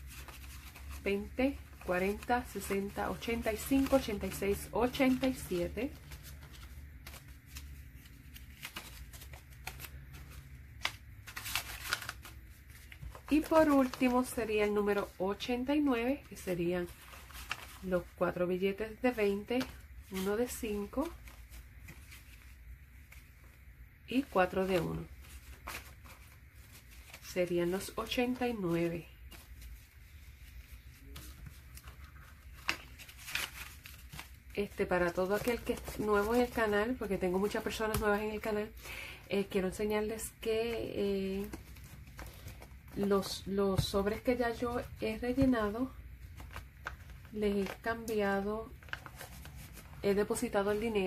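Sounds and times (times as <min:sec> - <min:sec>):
paper money rustling: 0:00.0 - 0:23.6, 0:24.2 - 0:51.0.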